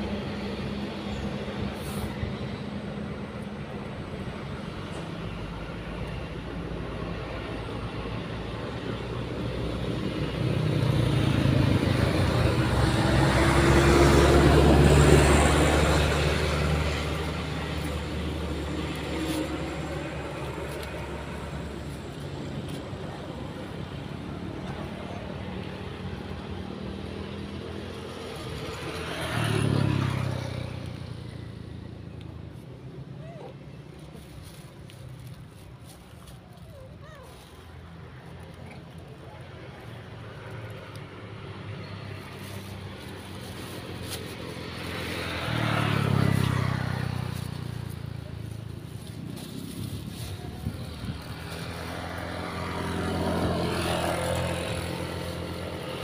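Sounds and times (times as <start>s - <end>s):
heavy vehicle passing: 0.0s - 32.0s
engine hum: 0.0s - 56.0s
vehicle passing quickly: 9.5s - 22.5s.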